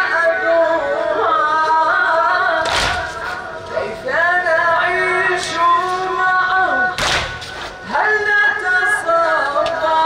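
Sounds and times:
man chanting a lament: 0.0 - 7.0.

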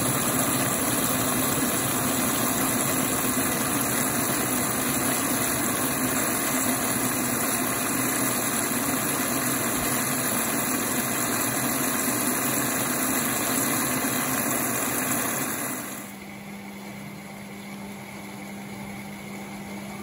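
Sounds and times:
water spraying into washing machine: 0.0 - 16.2.

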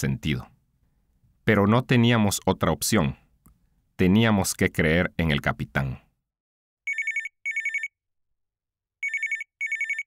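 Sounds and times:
telephone double ring: 6.9 - 7.9, 9.0 - 10.0.

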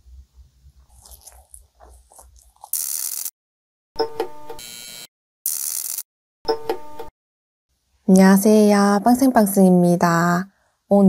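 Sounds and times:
person chewing: 0.8 - 3.3
electronic hissing burst: 2.7 - 3.3
electronic buzzing tone: 4.0 - 7.1.

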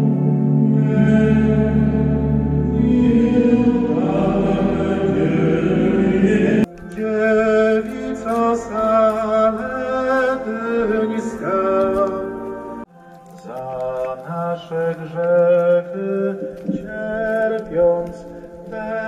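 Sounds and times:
people singing a hymn: 0.0 - 12.9.

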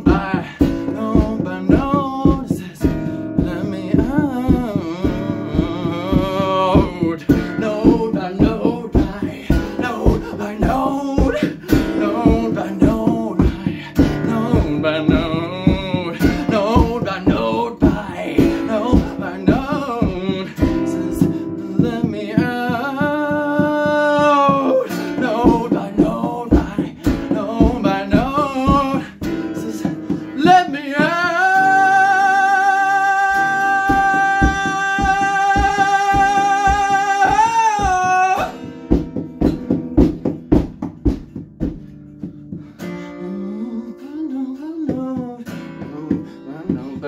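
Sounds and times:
man singing: 0.0 - 41.1, 42.7 - 47.0
strummed acoustic guitar: 0.0 - 47.0.

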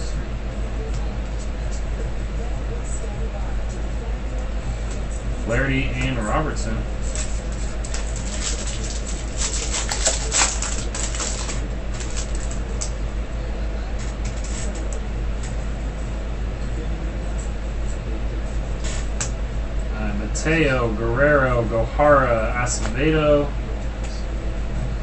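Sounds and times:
low electrical hum: 0.0 - 25.0
cards rustling: 7.0 - 12.9
foil wrapper crinkling and tearing: 7.1 - 12.9.

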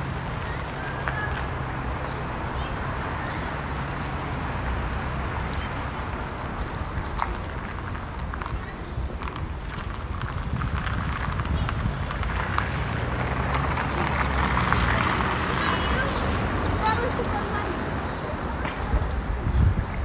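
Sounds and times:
footsteps on pavement: 0.0 - 2.4, 5.8 - 20.0
passers-by talking: 0.0 - 20.0
traffic rumble: 0.0 - 20.0.

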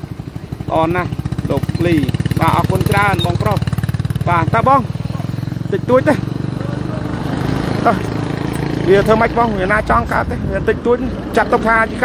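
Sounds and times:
motorcycle engine idling: 0.0 - 12.0.

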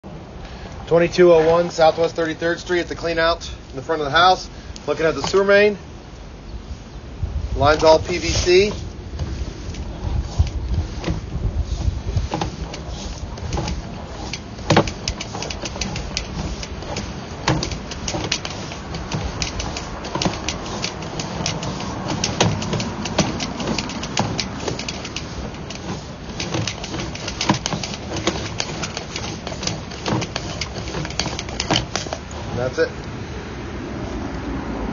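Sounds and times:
cable clicking and rattling: 7.6 - 32.8.

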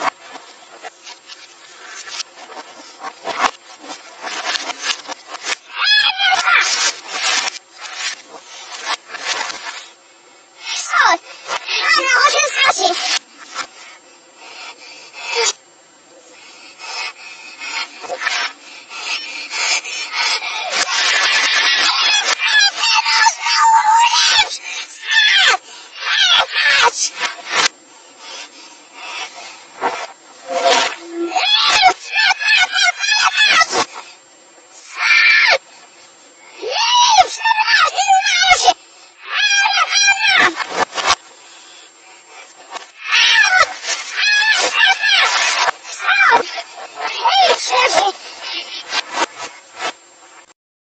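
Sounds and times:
reversed scratchy rubbing and rustling: 0.0 - 50.6
person screaming played backwards: 5.6 - 7.5, 10.7 - 13.2, 16.8 - 27.7, 29.0 - 34.0, 34.8 - 35.6, 36.6 - 41.2, 42.9 - 49.0.

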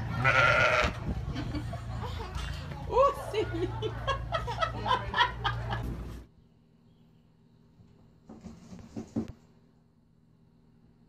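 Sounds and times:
sheep bleating: 0.1 - 1.0.

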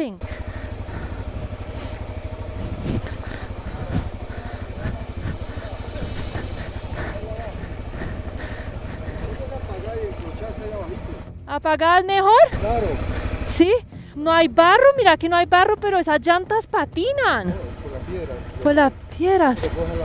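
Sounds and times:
motorcycle engine running at low revs: 0.0 - 20.0.

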